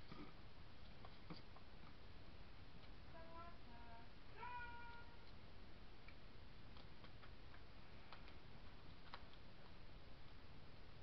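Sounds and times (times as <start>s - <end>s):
meow-like call: 4.4s - 5.2s.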